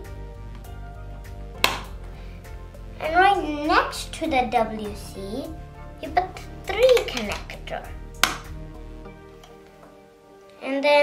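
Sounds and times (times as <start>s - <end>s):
background music: 0.0s - 11.0s
plastic part snapping on: 1.6s - 1.9s, 8.2s - 8.5s.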